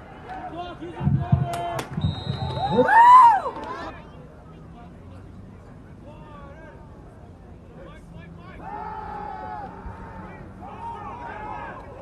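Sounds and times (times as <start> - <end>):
distant voices shouting: 8.1 - 12.0.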